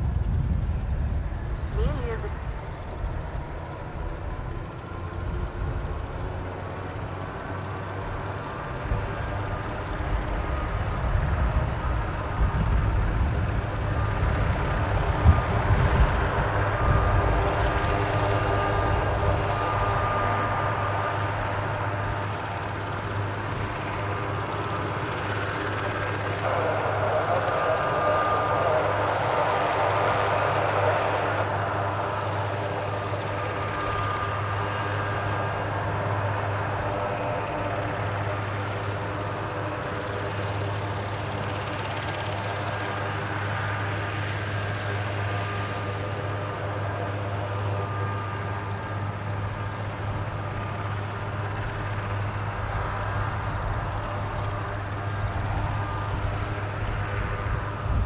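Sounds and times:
helicopter rotor rumble: 0:00.0 - 0:58.0
helicopter turbine whine: 0:00.0 - 0:58.0.

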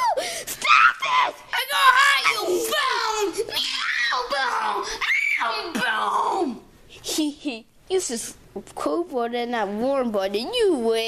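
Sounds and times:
child shouting and screaming: 0:00.0 - 0:06.7.

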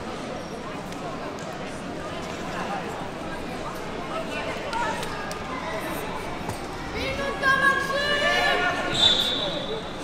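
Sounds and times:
voices calling and talking: 0:02.2 - 0:10.0
high whistle blast: 0:08.9 - 0:09.9.

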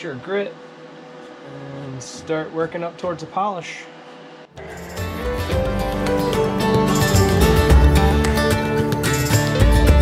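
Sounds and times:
background music with steady beat: 0:04.5 - 0:10.0.

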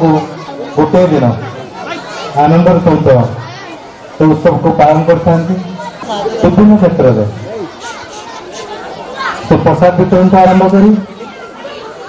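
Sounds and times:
man speaking over pa: 0:00.0 - 0:01.6, 0:04.2 - 0:07.7, 0:09.4 - 0:11.2
faint background chatter: 0:00.0 - 0:12.0.

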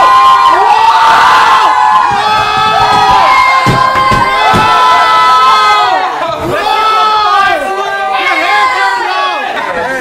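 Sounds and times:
young men shouting and cheering: 0:00.0 - 0:10.0
dull thumps: 0:02.0 - 0:04.9.

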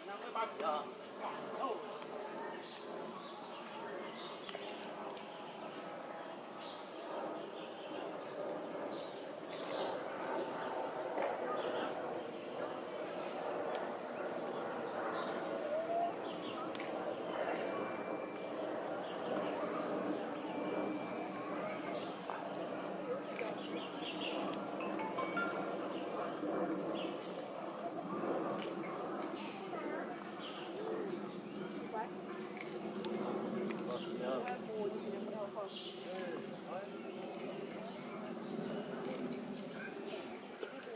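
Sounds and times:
high-pitched insect drone: 0:00.0 - 0:40.9
low background murmur: 0:00.1 - 0:40.9.

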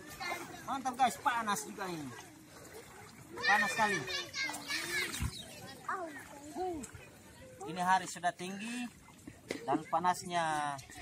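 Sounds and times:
people calling out in pool: 0:00.0 - 0:11.0.

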